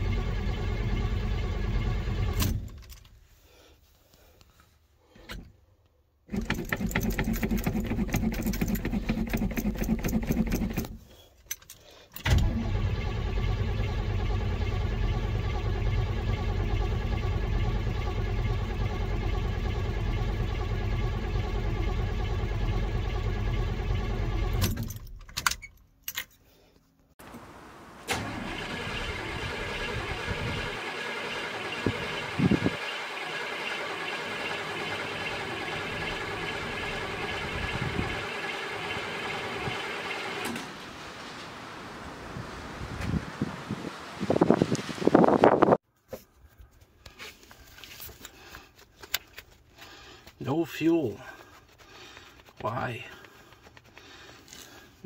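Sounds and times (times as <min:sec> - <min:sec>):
steady mechanical whir: 0:00.0 - 0:02.8, 0:12.2 - 0:24.9, 0:28.1 - 0:40.7
engine starter cranking: 0:00.0 - 0:03.2, 0:06.3 - 0:25.7, 0:28.0 - 0:40.8.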